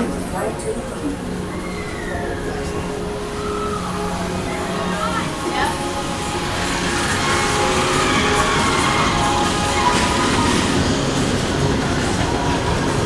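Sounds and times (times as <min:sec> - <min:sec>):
music playing: 0:00.0 - 0:13.0
ride train rolling on track: 0:00.0 - 0:13.0.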